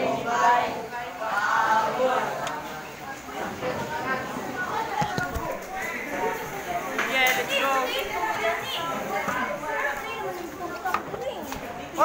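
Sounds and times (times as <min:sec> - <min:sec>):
young voices chattering: 0:00.0 - 0:12.0.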